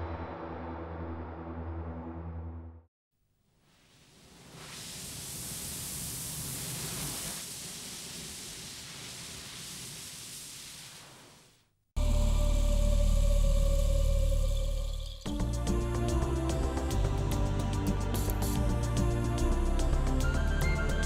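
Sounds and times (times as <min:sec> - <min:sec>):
loud music with deep bass chord: 0:15.3 - 0:21.0.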